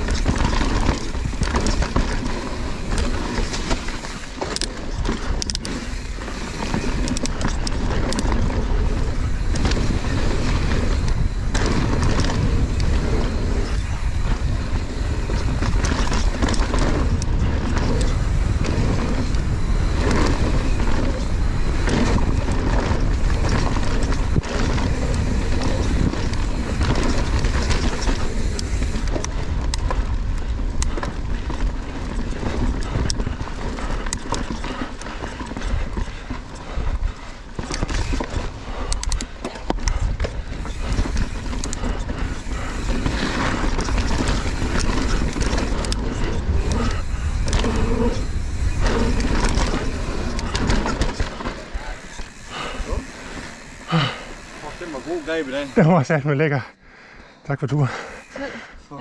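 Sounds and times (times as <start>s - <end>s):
wind rushing over microphone: 0.0s - 55.8s
bike chain and frame rattling: 0.0s - 56.7s, 57.7s - 59.0s
tyres on dirt: 0.0s - 56.7s.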